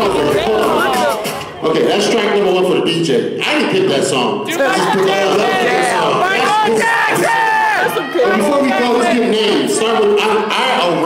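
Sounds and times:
long drawn-out yell: 0:05.4 - 0:09.2.

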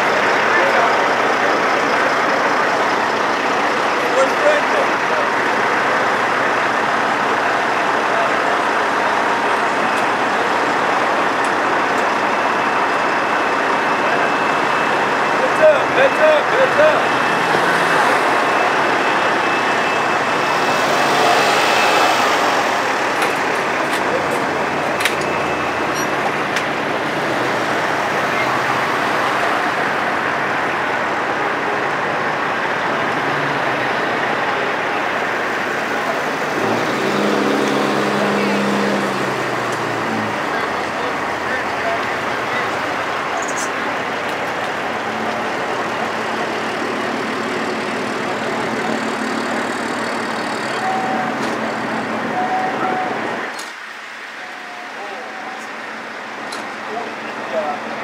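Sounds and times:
background voices: 0:00.0 - 0:58.0
diesel truck engines idling: 0:00.0 - 0:58.0
deeper engine note: 0:00.1 - 0:31.9.

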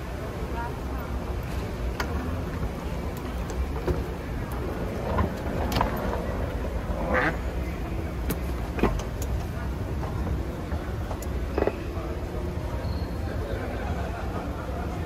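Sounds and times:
distant voices: 0:00.0 - 0:15.0.

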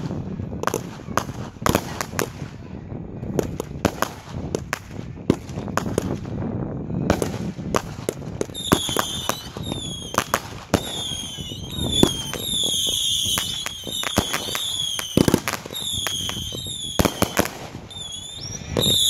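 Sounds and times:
fireworks bangs and crackles: 0:00.0 - 0:19.0
firework whistles: 0:08.5 - 0:19.0.

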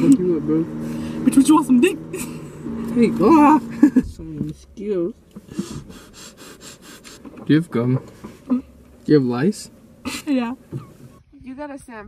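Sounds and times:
person laughing: 0:10.1 - 0:10.9.

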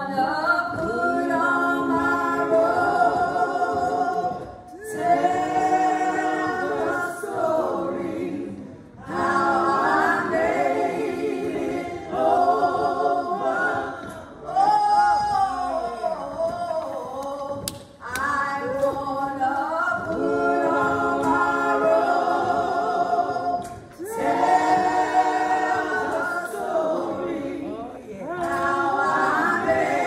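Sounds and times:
voices singing a hymn: 0:00.0 - 0:30.0.

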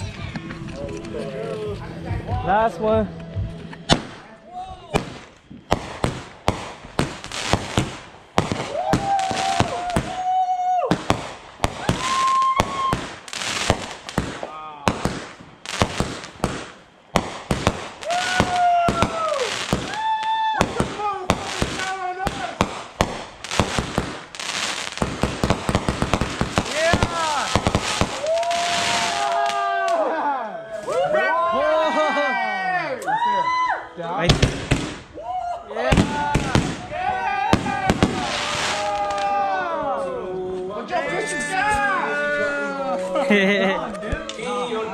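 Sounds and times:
fireworks bangs and crackling: 0:03.8 - 0:30.0, 0:34.2 - 0:35.2, 0:35.8 - 0:39.6
firework whistles: 0:04.9 - 0:29.6, 0:37.5 - 0:39.3.

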